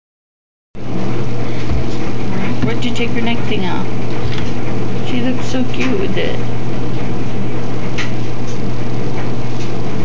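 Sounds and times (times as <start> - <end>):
loud mechanical hum: 0.8 - 10.0.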